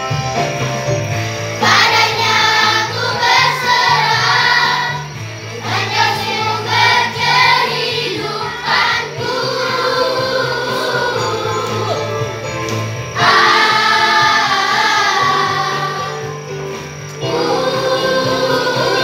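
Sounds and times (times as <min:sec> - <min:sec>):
instrumental accompaniment: 0:00.0 - 0:19.0
children's group singing: 0:01.6 - 0:12.4, 0:13.2 - 0:16.5, 0:17.2 - 0:19.0.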